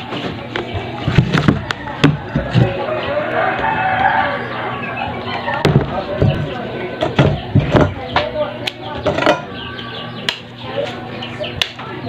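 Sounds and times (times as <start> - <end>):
murmur of background voices: 0.0 - 12.0.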